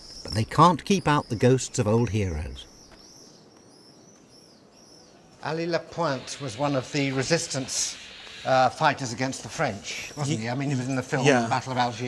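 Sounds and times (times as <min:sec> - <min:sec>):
low street ambience: 0:00.0 - 0:12.0
small bird chirping: 0:00.0 - 0:12.0.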